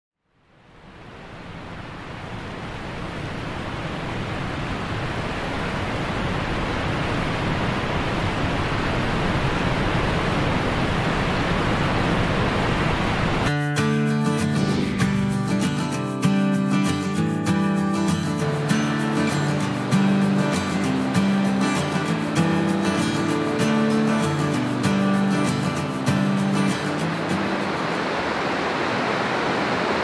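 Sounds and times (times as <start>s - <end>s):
waterfall rushing: 0.8s - 13.5s, 14.2s - 30.0s
acoustic guitar music: 13.4s - 28.2s.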